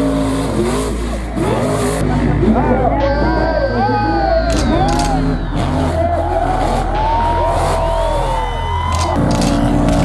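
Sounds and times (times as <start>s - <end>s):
truck engines revving: 0.0s - 10.0s.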